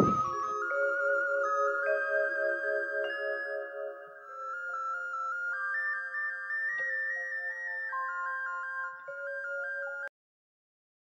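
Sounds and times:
background music melody: 0.0s - 10.1s.

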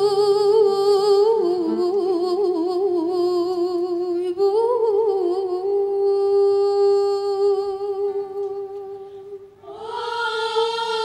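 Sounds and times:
women's choir singing: 9.6s - 11.0s.

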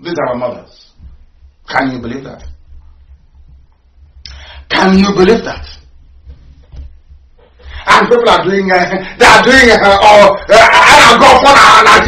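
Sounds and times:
steady low hum: 0.0s - 12.0s
man giving impassioned speech: 1.6s - 2.6s, 4.6s - 5.9s, 7.7s - 12.0s.

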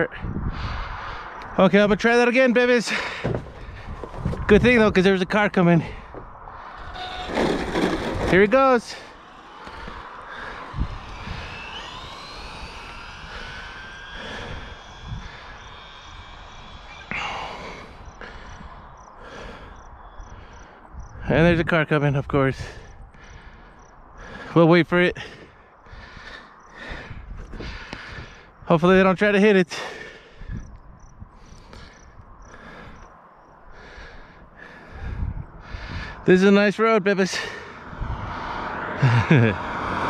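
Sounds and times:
car passing: 0.6s - 21.1s, 37.2s - 40.0s
low rumble: 3.2s - 21.3s, 37.5s - 40.0s.

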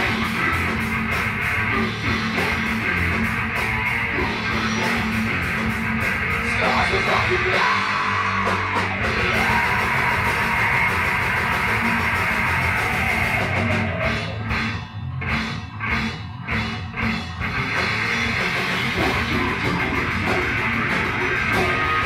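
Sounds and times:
extreme metal band playing: 0.0s - 22.0s.

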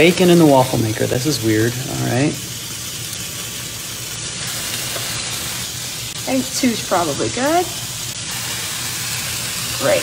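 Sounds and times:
bacon sizzling: 0.0s - 10.0s.

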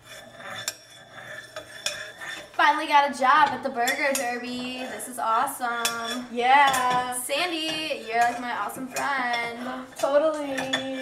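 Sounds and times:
metal utensil scraping pot: 0.0s - 11.0s.

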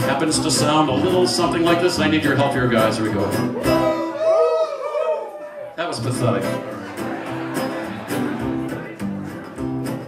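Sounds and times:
acoustic guitar strumming: 0.0s - 4.2s, 6.0s - 10.0s
upright bass notes: 6.2s - 10.0s
electric guitar: 6.4s - 10.0s.

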